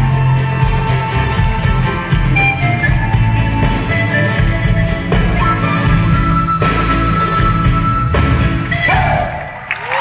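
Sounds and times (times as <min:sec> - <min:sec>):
folk band playing: 0:00.0 - 0:09.8
audience cheering and shouting: 0:08.2 - 0:10.0.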